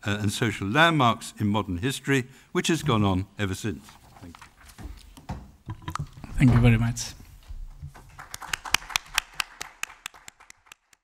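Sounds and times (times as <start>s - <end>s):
hands clapping: 7.9s - 11.0s.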